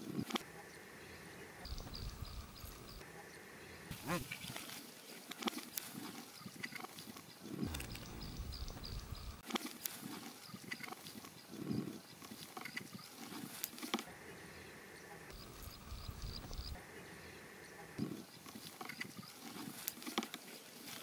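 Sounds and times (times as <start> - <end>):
faint chirping: 0.0 - 4.6, 7.4 - 9.4, 14.1 - 19.4.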